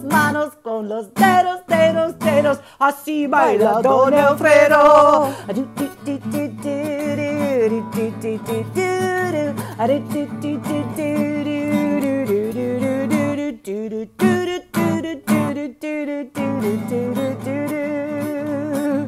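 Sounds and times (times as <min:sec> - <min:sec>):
acoustic guitar strumming: 0:00.0 - 0:19.0
person singing without words: 0:00.0 - 0:19.0.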